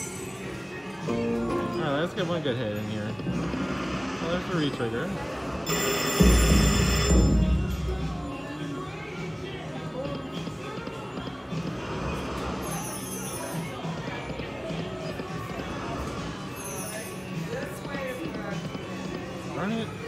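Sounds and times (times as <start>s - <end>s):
slot machine reel sounds: 5.6s - 8.2s
slot machine music: 5.6s - 8.3s.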